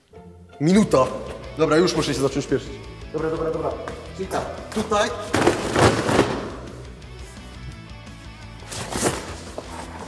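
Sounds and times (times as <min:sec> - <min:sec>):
background music: 0:00.0 - 0:10.0
cardboard boxes crunching and thudding: 0:05.3 - 0:06.6
cardboard rustling: 0:05.3 - 0:06.6, 0:08.6 - 0:10.0.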